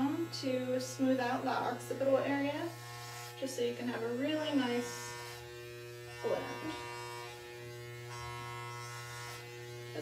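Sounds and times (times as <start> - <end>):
electric hair clippers humming: 0.0 - 10.0.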